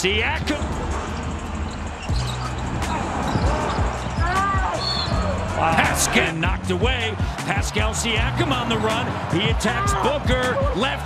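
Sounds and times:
background music with bass line: 0.0 - 11.0
shoe squeaks: 0.5 - 5.4.

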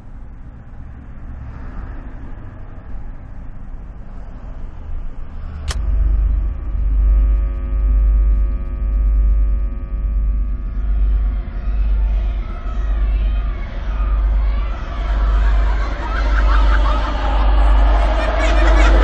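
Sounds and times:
low rumbling drone: 0.0 - 19.0
steady ringing tones: 5.8 - 19.0.

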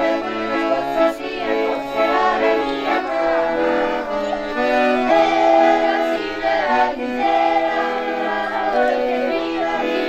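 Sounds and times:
accordion: 0.0 - 10.0
children singing folk song: 0.0 - 10.0.

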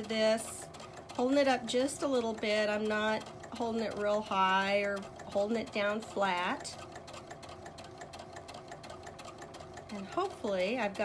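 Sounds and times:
sewing machine stitching: 0.0 - 11.0.

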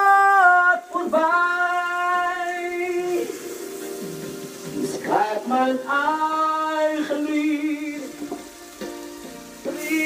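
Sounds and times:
person singing a long note: 0.0 - 3.4, 5.1 - 8.1
karaoke backing music: 0.0 - 10.0.

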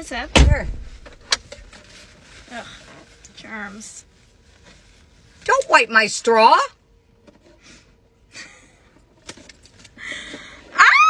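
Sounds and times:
woman squealing: 10.7 - 11.0.

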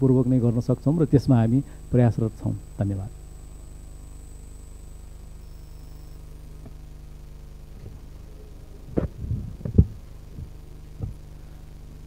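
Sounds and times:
low electrical hum: 0.0 - 12.0
dull thumps and knocks: 8.9 - 11.2.

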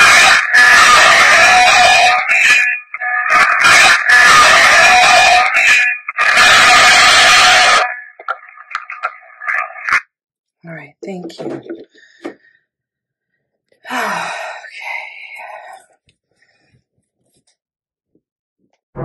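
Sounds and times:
loud hiss and static: 0.0 - 8.3
voice-like sound in static: 0.0 - 10.0.

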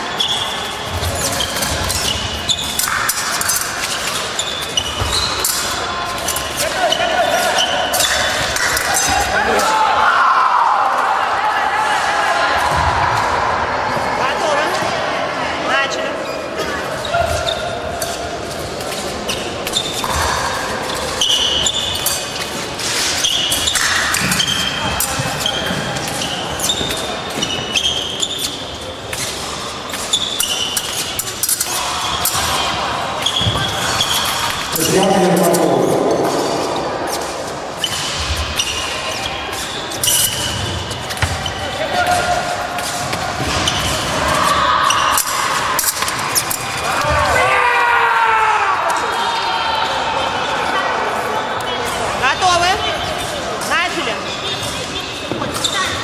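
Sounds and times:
shoe squeaks: 0.0 - 9.2, 16.2 - 18.2, 18.8 - 46.8, 51.6 - 56.0
indistinct voices: 0.0 - 56.0.

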